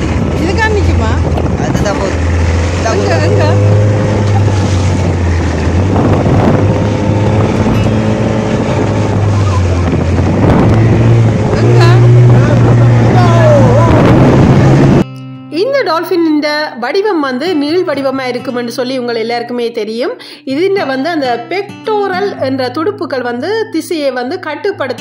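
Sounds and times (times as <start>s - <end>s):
motorboat engine running: 0.0s - 15.0s
water noise: 0.0s - 15.0s
wind: 0.0s - 15.1s
voices: 0.3s - 4.6s, 11.4s - 14.7s.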